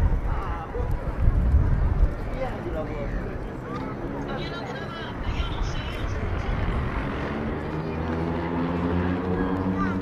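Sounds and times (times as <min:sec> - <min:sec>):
passersby voices: 0:00.0 - 0:10.0
steady background noise: 0:00.0 - 0:10.0
vehicle engine hum: 0:00.0 - 0:10.0.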